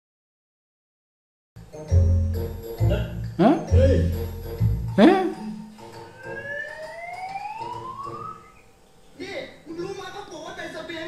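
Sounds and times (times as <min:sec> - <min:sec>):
rising whistle sound effect: 0:06.0 - 0:08.7.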